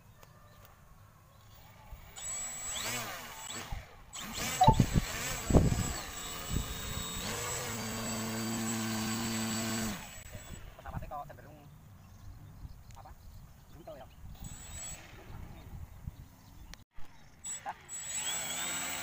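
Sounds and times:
model plane electric motor: 1.5 - 10.7, 14.4 - 15.3, 17.4 - 19.0.

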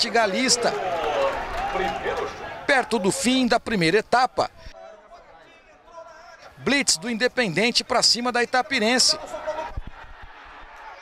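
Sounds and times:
man narrating: 0.0 - 0.8, 1.7 - 4.7, 5.3 - 9.8
outdoor background noise: 0.0 - 11.0.

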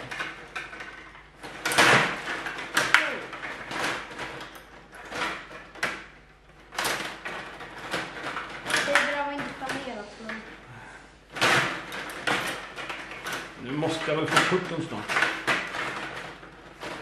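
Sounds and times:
metal rods sliding and rattling: 0.0 - 10.6, 11.2 - 17.0
plastic players clacking: 0.0 - 10.6, 11.3 - 17.0.

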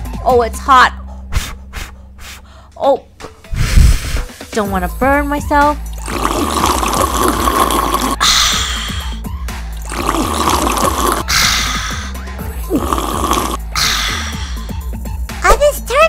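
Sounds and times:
background music: 0.0 - 16.0
person blowing and sipping tea: 3.6 - 4.5, 5.8 - 14.9.

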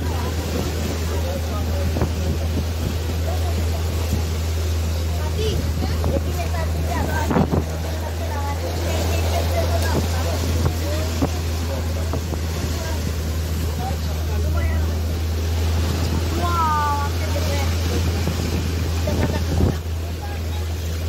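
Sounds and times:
boat engine droning: 0.0 - 21.0
water rushing and splashing: 0.0 - 21.0
wind buffeting microphone: 0.0 - 21.0.

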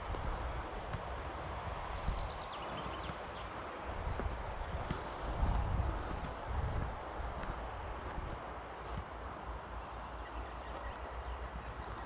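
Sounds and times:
footsteps on dry grass: 0.0 - 12.0.

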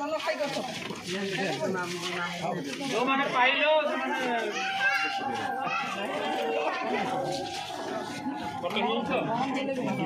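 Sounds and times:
women and children talking: 0.0 - 10.0.

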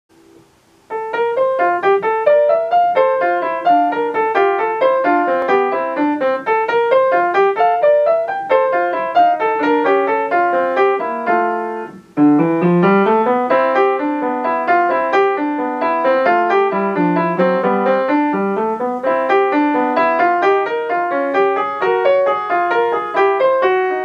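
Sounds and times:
upright piano playing classical piece: 0.2 - 24.0.

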